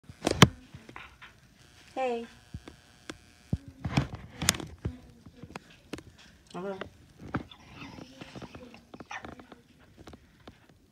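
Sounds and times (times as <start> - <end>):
soft clicks: 2.4 - 10.8.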